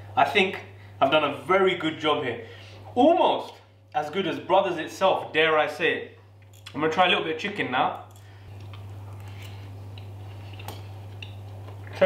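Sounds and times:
steady low hum: 0.0s - 12.0s
person chewing: 8.5s - 12.0s.

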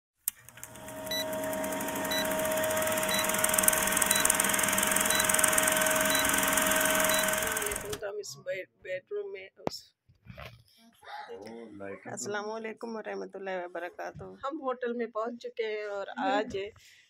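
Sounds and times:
projector-like whirring clatter: 0.3s - 8.0s
short high beeps: 3.0s - 7.9s.

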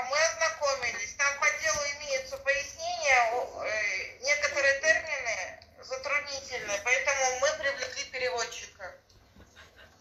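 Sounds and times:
person speaking: 0.0s - 9.1s.

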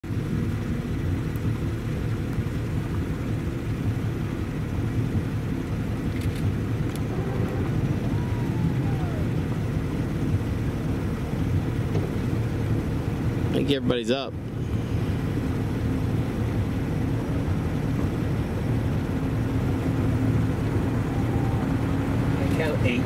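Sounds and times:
boat motor rumbling: 0.0s - 23.0s.

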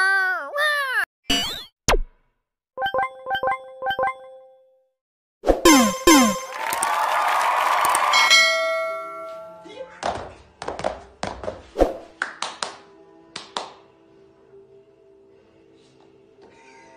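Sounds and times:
ringing chime: 8.1s - 9.7s
footsteps on a wooden floor: 10.1s - 11.8s.

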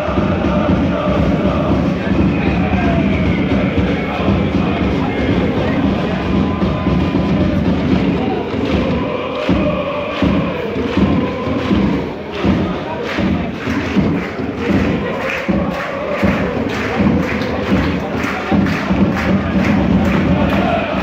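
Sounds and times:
steady drum beat: 0.0s - 21.0s
supporters chanting in unison: 0.0s - 21.0s.

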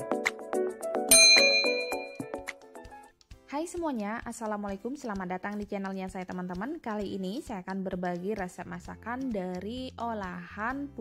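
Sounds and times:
background music: 0.0s - 11.0s
notification bell ding: 1.1s - 2.4s.

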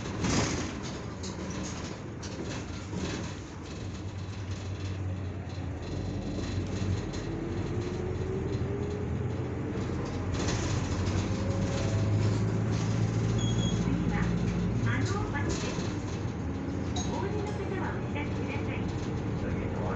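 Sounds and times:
bus engine drone: 0.0s - 19.9s
road noise: 0.0s - 19.9s.

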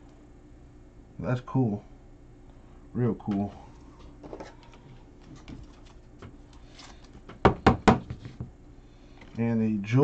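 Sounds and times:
cards rustling: 4.0s - 7.3s.

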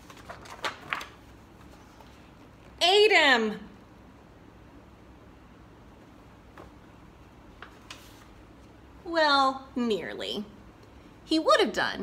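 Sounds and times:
book pages rustling: 0.0s - 2.8s, 7.5s - 8.8s.

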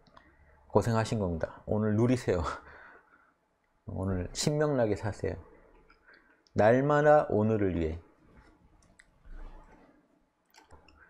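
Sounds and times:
faint small clicks: 0.0s - 0.4s, 8.4s - 9.2s, 10.4s - 11.0s.

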